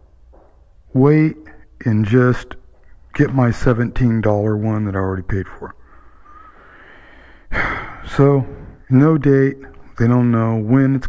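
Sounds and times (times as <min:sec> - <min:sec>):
man speaking: 0:00.9 - 0:05.8, 0:07.5 - 0:11.0
man sighing: 0:06.3 - 0:08.8.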